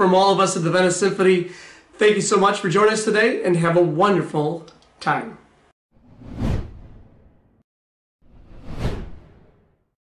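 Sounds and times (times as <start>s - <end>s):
whoosh sound effects: 8.2s - 9.6s.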